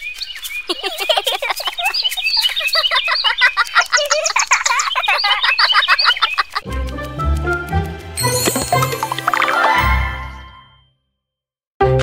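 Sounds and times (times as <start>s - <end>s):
songbirds chirping and twittering: 0.0s - 7.0s.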